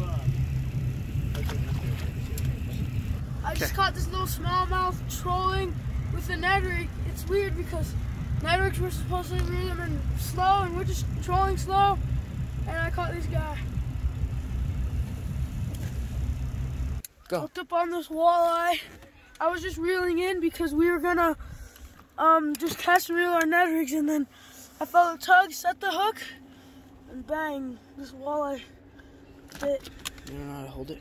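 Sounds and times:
boat motor rumbling: 0.0 - 17.1, 24.1 - 31.0.

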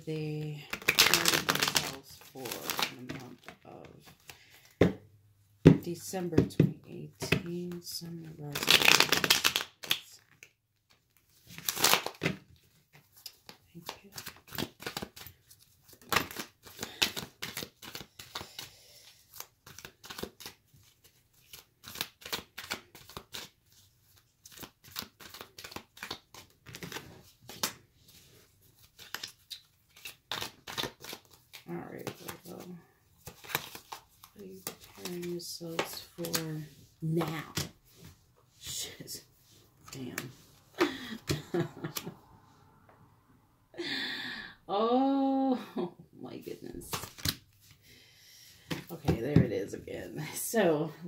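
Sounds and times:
cards shuffling: 0.7 - 4.9, 7.2 - 39.0, 46.7 - 47.8.

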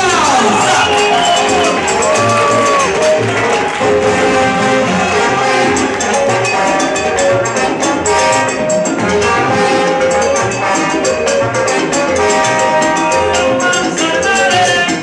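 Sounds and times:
salsa music with horns: 0.0 - 15.0.

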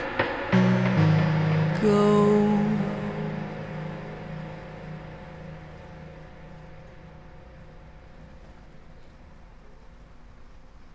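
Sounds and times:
song closing notes: 0.0 - 9.5
faint hiss: 0.0 - 10.9.

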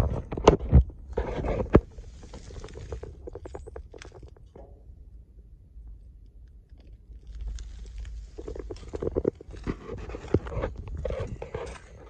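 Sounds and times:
microphone handling noise: 0.0 - 4.6, 8.1 - 12.0
crunching on gravel: 1.0 - 4.7, 6.7 - 12.0.

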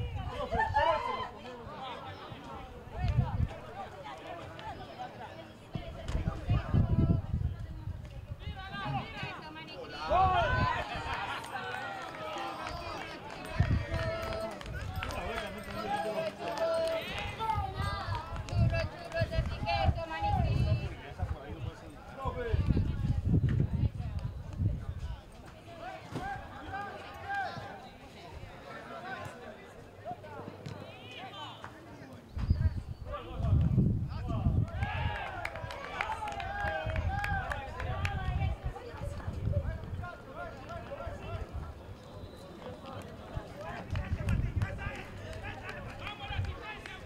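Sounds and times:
voices shouting and calling out: 0.0 - 47.0.

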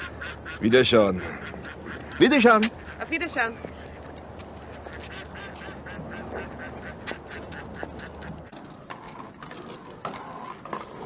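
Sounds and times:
ducks quacking: 0.0 - 8.6.

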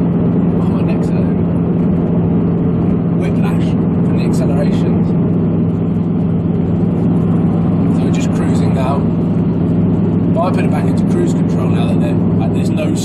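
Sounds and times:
car engine cruising drone: 0.0 - 13.0.

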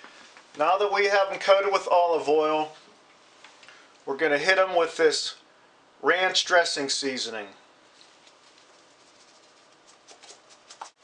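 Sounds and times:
seasoning shaken from shaker bottle: 8.0 - 11.0.

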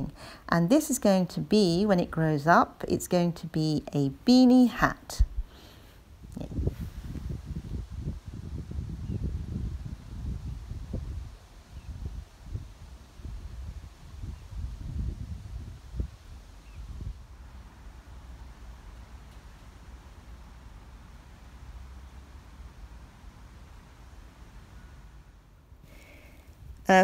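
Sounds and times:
wind buffeting microphone: 6.1 - 17.6.

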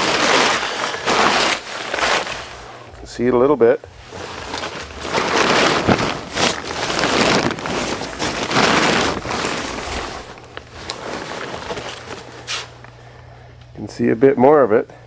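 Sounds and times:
rustling and scraping of junk: 0.0 - 2.8, 3.9 - 12.8.

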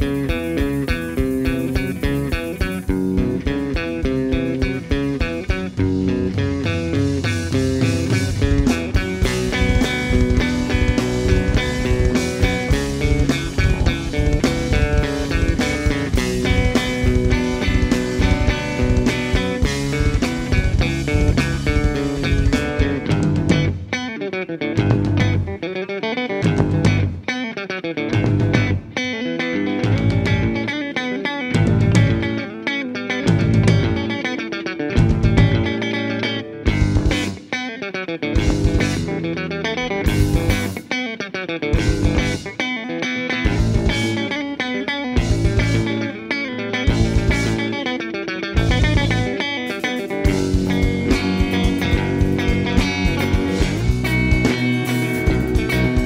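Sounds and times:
electric bass stabs: 0.0 - 23.9, 24.8 - 25.6, 26.4 - 27.2, 28.2 - 28.9, 29.7 - 30.8, 31.5 - 32.5, 33.3 - 37.5, 38.4 - 40.9, 41.8 - 42.6, 43.4 - 44.4, 45.2 - 46.2, 46.8 - 56.0
drum kit: 0.0 - 24.0, 24.8 - 25.6, 26.4 - 27.3, 28.1 - 29.0, 29.6 - 30.8, 31.4 - 32.6, 33.2 - 37.7, 38.3 - 41.1, 41.7 - 42.7, 43.3 - 46.2, 46.8 - 56.0
electric guitar: 0.0 - 56.0.

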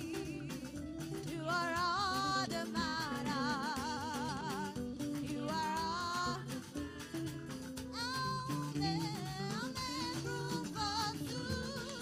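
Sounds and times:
electric guitar: 0.0 - 12.0
people singing: 0.0 - 12.0
steady drum beat: 0.0 - 12.0.

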